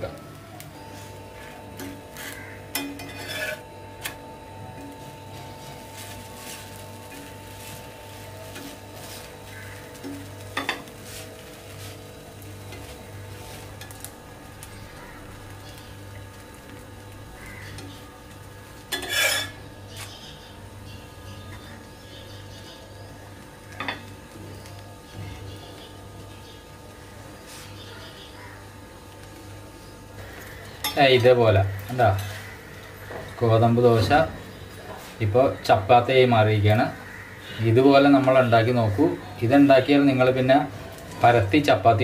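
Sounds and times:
faint sizzle: 0.0s - 42.0s
metal spatula scraping a pan: 1.7s - 3.7s, 18.9s - 20.2s.

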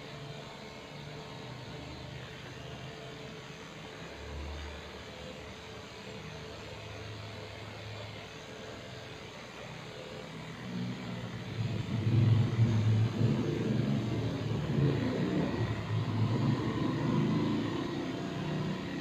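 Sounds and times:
electric dog clippers buzzing: 10.5s - 19.0s.

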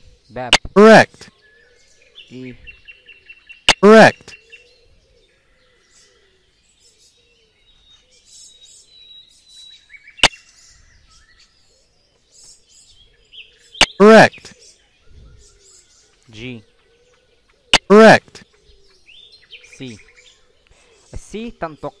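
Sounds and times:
faint bird chirping: 0.0s - 22.0s
sharp clicks: 0.5s - 0.8s, 3.7s - 3.9s, 17.8s - 18.0s.

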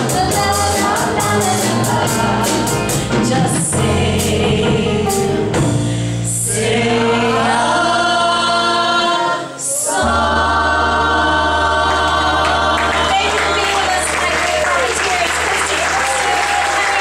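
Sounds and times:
woman singing lead vocal: 0.0s - 4.9s
live pop band playing: 0.0s - 7.2s
men singing harmony: 6.3s - 13.1s.

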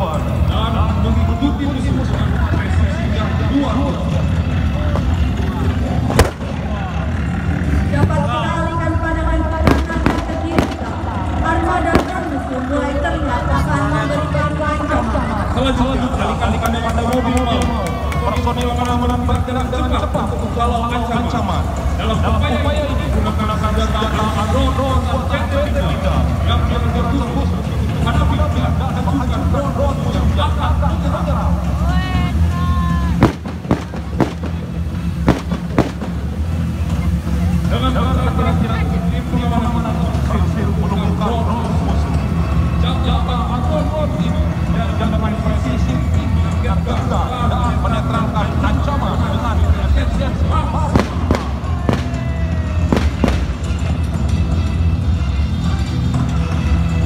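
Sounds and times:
steady low rumble: 0.0s - 55.9s
music: 0.0s - 57.0s
sharp bangs: 6.0s - 7.1s, 9.6s - 12.6s, 33.2s - 36.8s
gunshot cracks: 33.2s - 34.5s.

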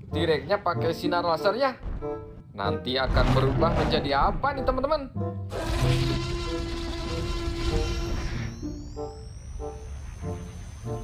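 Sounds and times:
background music: 0.0s - 11.0s
laser gun whine: 5.5s - 11.0s.

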